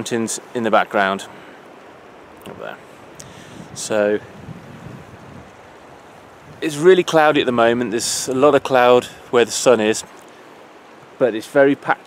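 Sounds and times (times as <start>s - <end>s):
wind noise on microphone: 2.5s - 9.4s.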